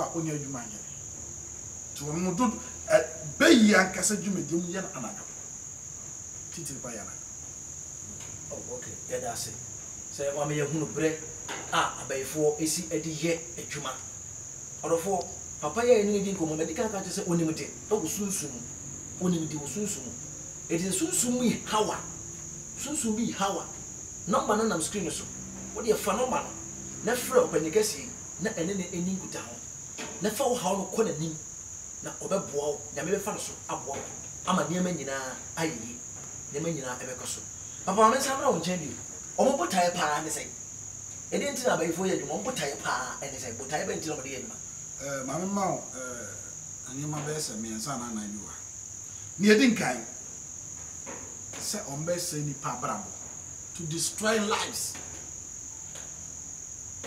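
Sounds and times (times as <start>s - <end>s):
faint low hum: 0.0s - 57.0s
man preaching: 2.0s - 5.3s, 14.8s - 18.6s, 19.2s - 22.1s, 22.8s - 29.6s, 36.6s - 40.5s, 49.4s - 50.1s, 53.8s - 55.0s.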